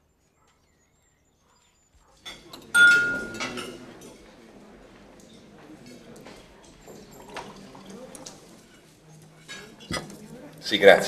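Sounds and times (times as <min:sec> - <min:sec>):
chatter of diners: 0:00.2 - 0:11.0
dishes and cutlery clinking: 0:02.0 - 0:11.0.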